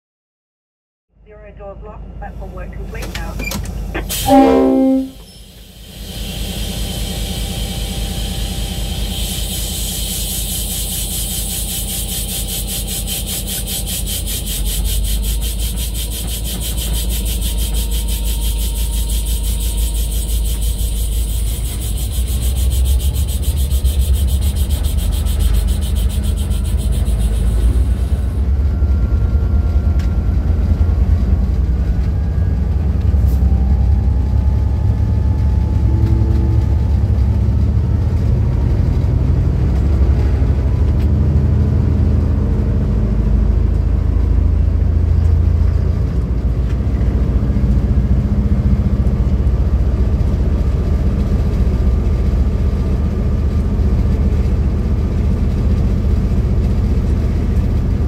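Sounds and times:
deep train rumble: 1.1 - 58.0
diesel locomotive engine pulsing: 1.1 - 58.0.

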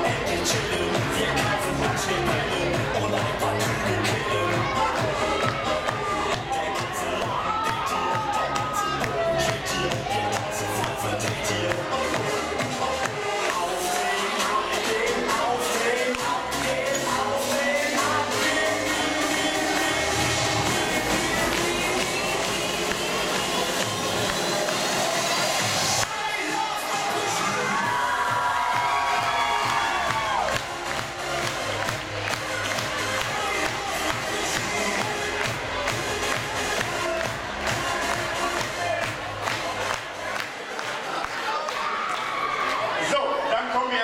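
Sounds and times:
audience clapping and cheering: 0.0 - 16.6, 17.4 - 43.8
loud dance music: 0.0 - 44.0.

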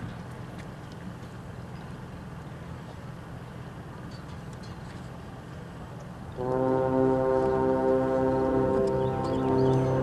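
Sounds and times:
marching band brass chord: 6.4 - 10.0.

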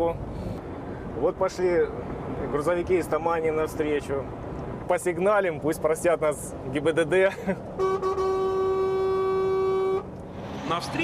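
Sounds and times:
truck engine and road noise: 0.0 - 11.0
truck horn long note: 7.8 - 10.1.

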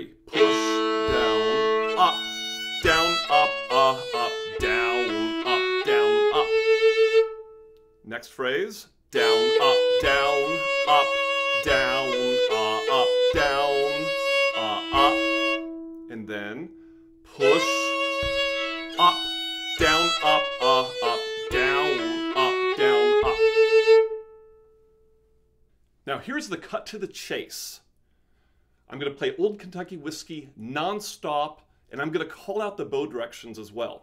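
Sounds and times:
solo fiddle playing: 0.0 - 7.8, 9.2 - 16.5, 17.3 - 24.6.

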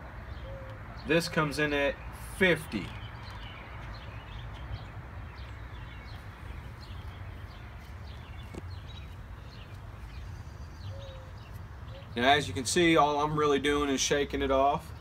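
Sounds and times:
small birds chirping: 0.2 - 15.0.

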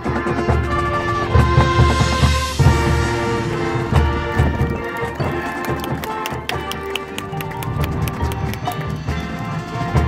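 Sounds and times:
brass chords: 0.0 - 10.0
sharp percussion strikes: 0.8 - 10.0.

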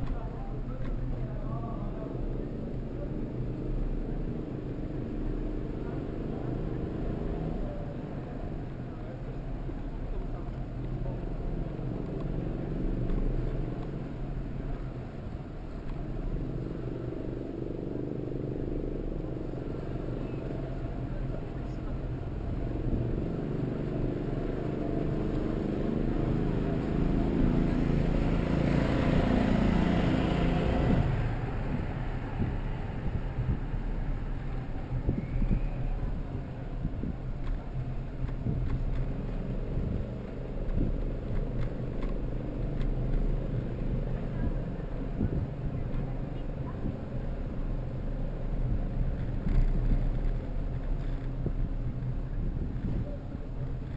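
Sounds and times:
motor vehicle passing: 0.0 - 53.9
road and wind rumble: 0.0 - 53.9.

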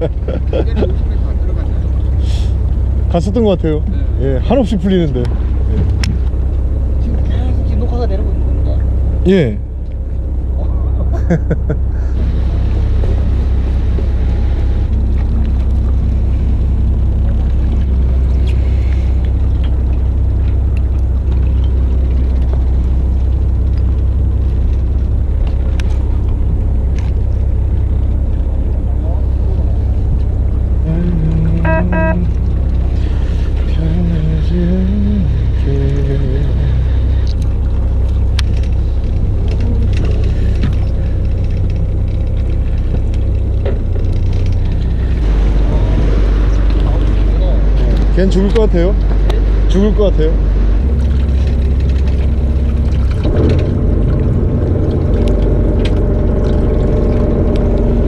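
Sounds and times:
boat engine humming: 0.0 - 58.0.

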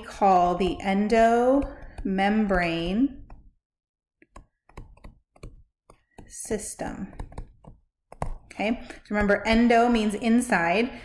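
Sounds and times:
stylus clicking on tablet screen: 1.1 - 3.6, 4.2 - 9.6.

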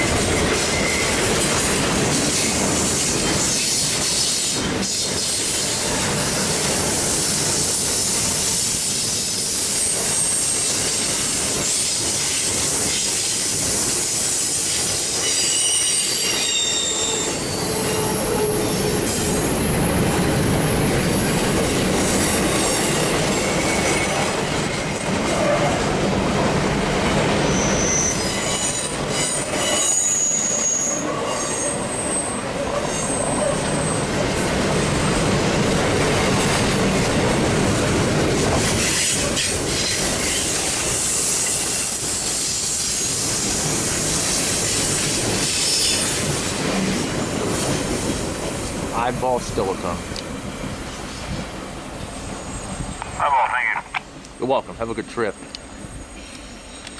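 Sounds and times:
train wheels rumbling on rail: 0.0 - 56.9
wheel squeal: 15.2 - 19.0, 27.4 - 34.0.

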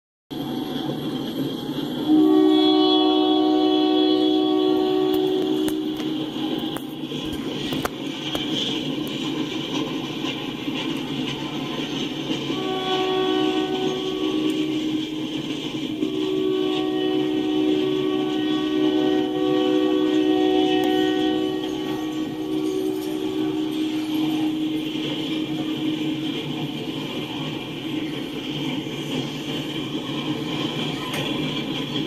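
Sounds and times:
freight train wheels clattering: 0.3 - 32.0
train horn blasts: 2.0 - 7.8, 12.5 - 27.6.

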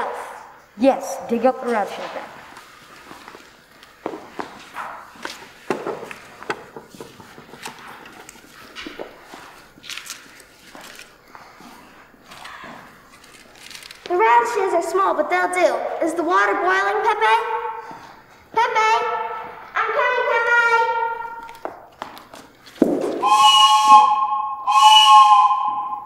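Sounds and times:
footsteps on wooden stage floor: 2.3 - 12.1.

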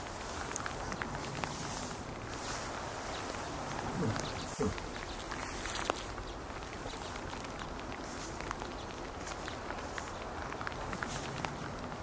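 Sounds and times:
animal moving through brush: 0.0 - 12.0.

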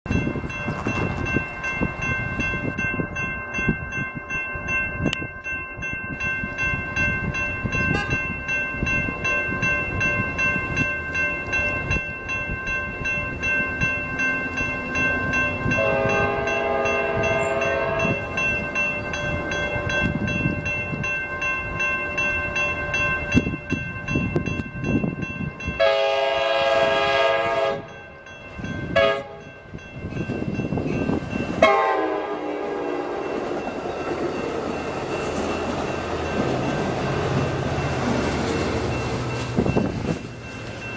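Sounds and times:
crossing bells ringing: 0.1 - 40.9
train wheels rumbling on rails: 0.1 - 40.9
train horn blasts: 7.9 - 8.2, 15.7 - 18.3, 25.8 - 28.0, 28.9 - 29.4, 31.6 - 33.4.

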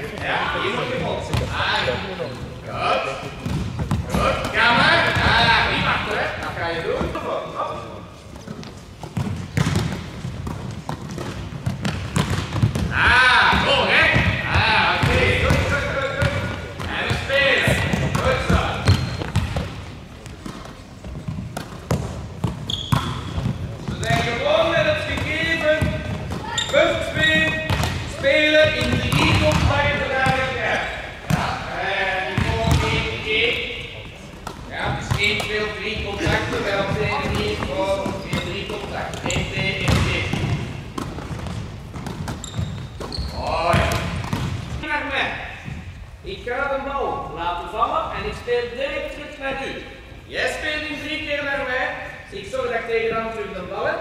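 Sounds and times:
volleyballs hit and bouncing: 0.0 - 46.1
players calling out and chattering: 0.0 - 54.0.

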